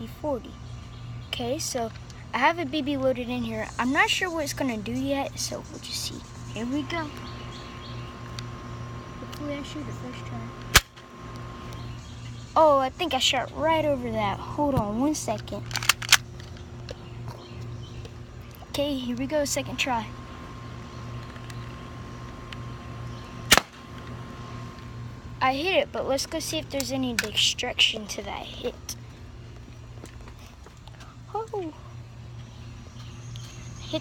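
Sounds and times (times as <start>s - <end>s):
low hum: 0.0s - 34.0s
bird chirps: 3.5s - 9.2s, 31.8s - 34.0s
airsoft pistol shot: 10.7s - 11.0s, 23.5s - 23.8s.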